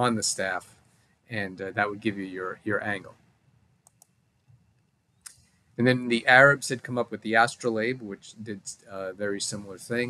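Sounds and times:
computer mouse clicking: 0:03.8 - 0:04.1.

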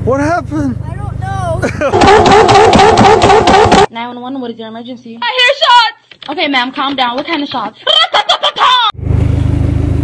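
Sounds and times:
exhaust pops and bangs: 0:01.9 - 0:03.9.

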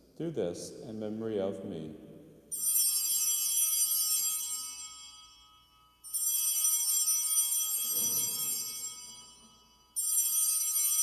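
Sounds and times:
altar bells ringing: 0:02.5 - 0:11.0.

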